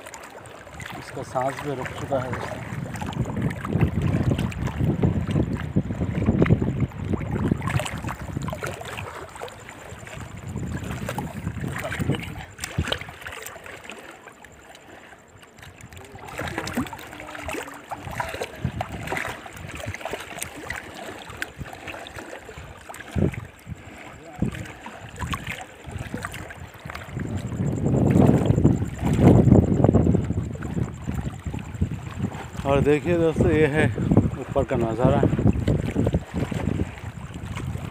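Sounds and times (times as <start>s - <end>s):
water lapping around rocks: 0.0s - 37.9s
wind rumble on microphone: 0.6s - 13.3s, 15.6s - 37.9s.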